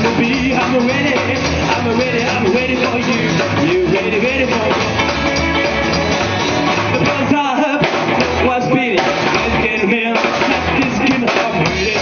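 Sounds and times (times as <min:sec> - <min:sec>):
live rockabilly band playing: 0:00.0 - 0:12.0.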